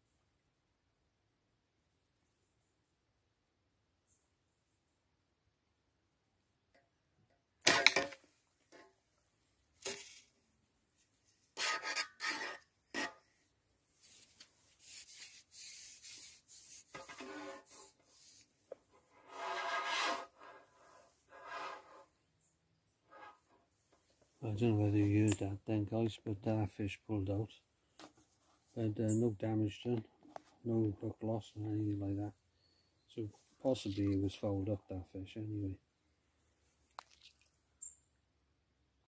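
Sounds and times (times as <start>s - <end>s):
rubbing and scraping: 11.4s - 13.3s, 14.0s - 22.2s, 23.1s - 25.1s.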